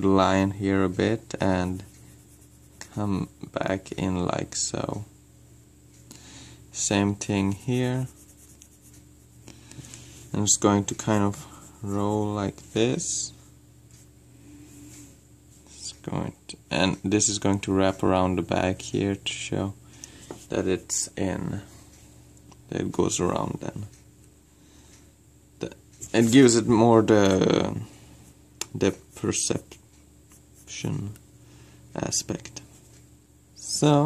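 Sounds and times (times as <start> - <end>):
person speaking: 0.0 - 5.1, 6.7 - 9.0, 9.7 - 13.4, 25.6 - 28.0, 28.6 - 31.2
pencil scratching on paper: 1.7 - 3.0, 7.4 - 9.4.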